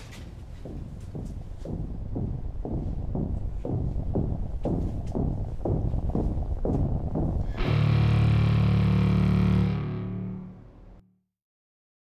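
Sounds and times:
distorted electric guitar chord: 0:07.4 - 0:11.0.

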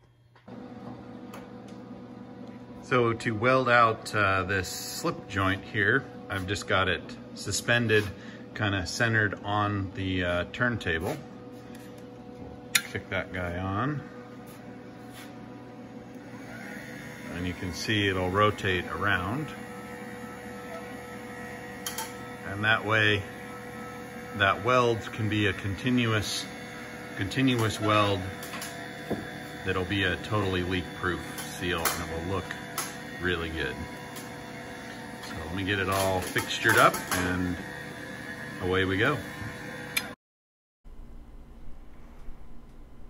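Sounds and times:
machine hum: 0:00.0 - 0:40.2, 0:40.9 - 0:43.0.

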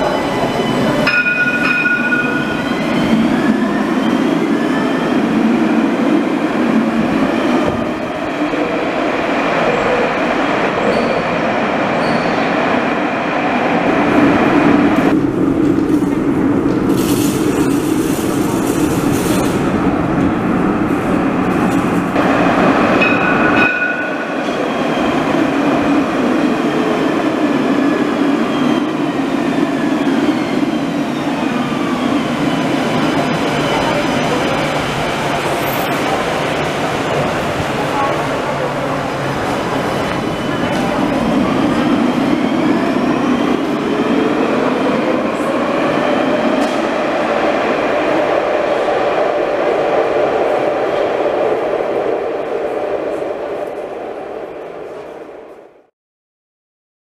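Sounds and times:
tram wheels rumbling on rails: 0:00.0 - 0:55.9.

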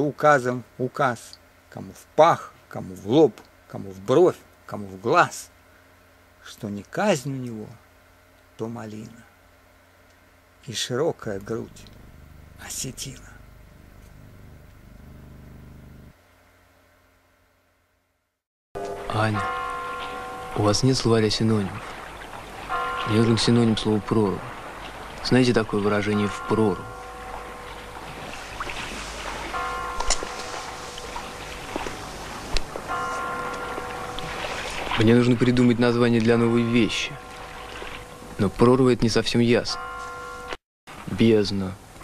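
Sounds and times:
bell-like ringing tone: 0:18.8 - 0:40.6
low steady drone: 0:18.8 - 0:40.6
faint hiss: 0:19.1 - 0:39.0.

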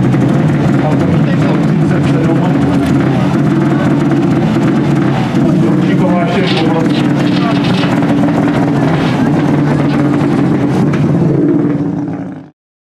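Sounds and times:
car engine idling: 0:00.0 - 0:12.5
voices: 0:00.7 - 0:11.1.

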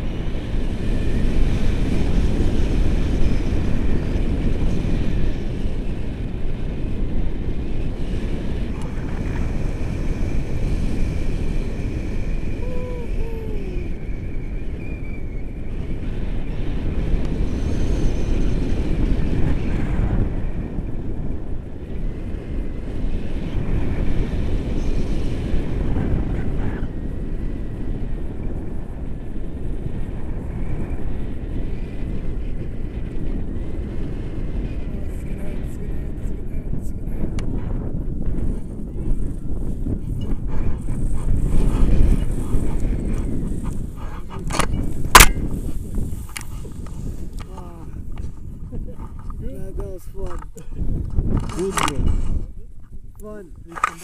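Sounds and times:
wind rushing on microphone: 0:00.0 - 0:54.0.

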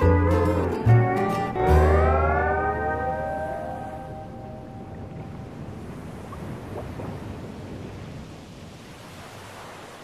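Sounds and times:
sustained chord ringing: 0:00.0 - 0:05.1.

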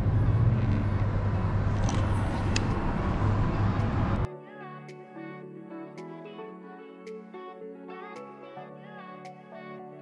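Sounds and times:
distant road traffic: 0:00.0 - 0:04.3.

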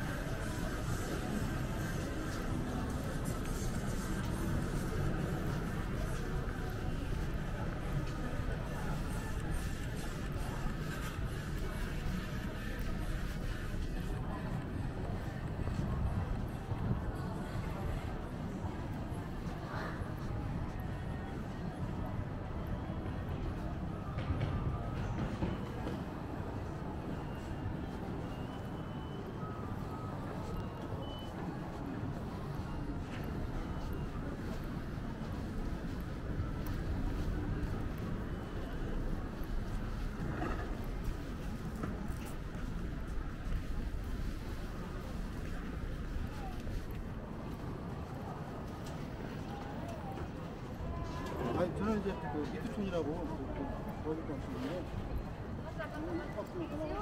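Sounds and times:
city background rumble: 0:00.0 - 0:57.0.

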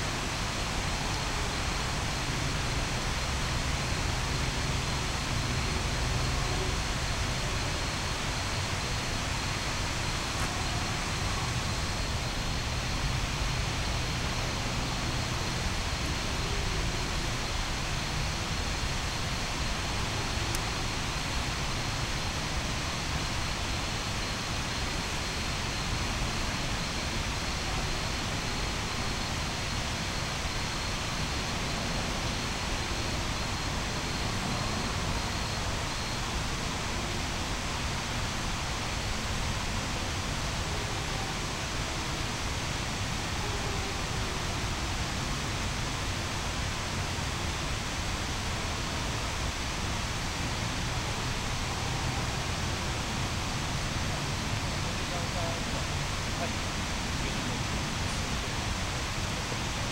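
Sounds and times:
faint high-pitched pulsing tone: 0:00.0 - 0:59.9
night city ambience: 0:00.0 - 0:59.9.

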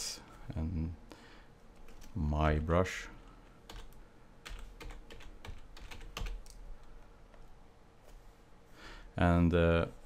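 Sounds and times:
computer keyboard key clicks: 0:03.7 - 0:06.6.

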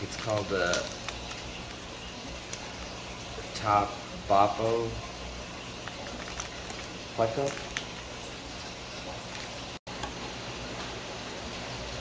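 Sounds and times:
plastic bag crinkling: 0:00.0 - 0:03.0, 0:05.7 - 0:08.2.

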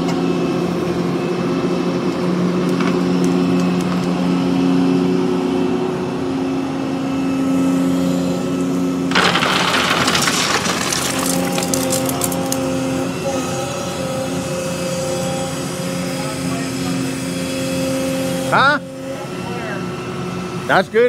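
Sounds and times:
excavator diesel engine running: 0:00.0 - 0:20.8
gravel pouring from bucket: 0:09.1 - 0:12.5.

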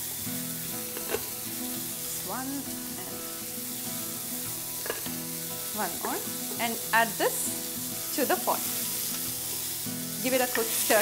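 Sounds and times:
meat and onions sizzling in oil: 0:00.0 - 0:11.0.

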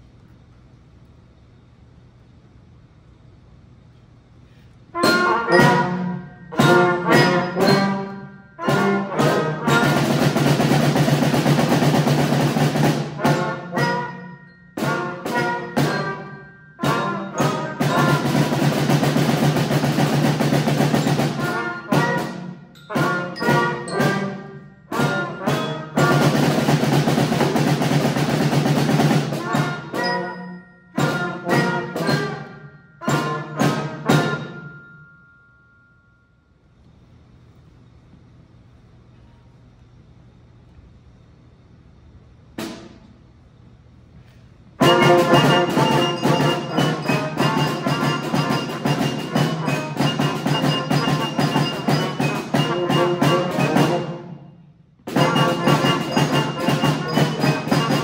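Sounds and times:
concert band playing chords: 0:05.0 - 0:34.8, 0:44.8 - 0:54.4, 0:55.1 - 0:58.0.

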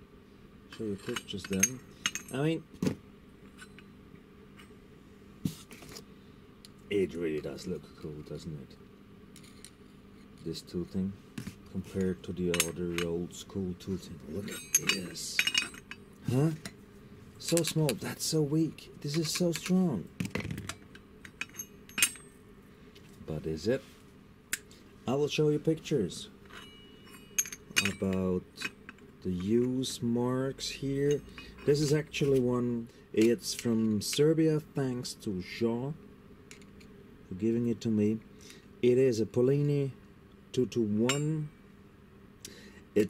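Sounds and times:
low steady hum: 0:00.0 - 0:43.0
metal clutch parts clinking: 0:00.7 - 0:02.6, 0:11.9 - 0:16.8, 0:17.4 - 0:18.0, 0:19.0 - 0:22.3, 0:26.1 - 0:32.4
sharp metallic clink with ringing: 0:14.4 - 0:16.0, 0:26.5 - 0:28.9, 0:41.0 - 0:41.5.

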